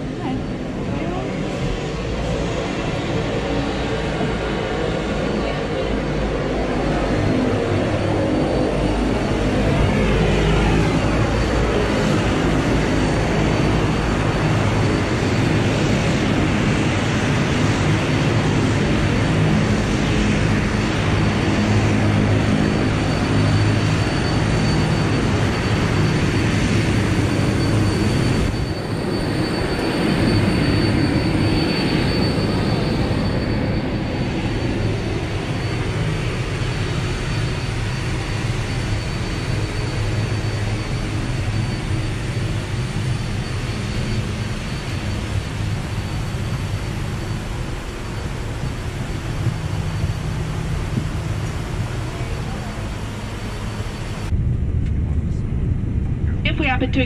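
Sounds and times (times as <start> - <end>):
aircraft rumble: 0.0 - 57.0
high steady whine: 7.1 - 57.0.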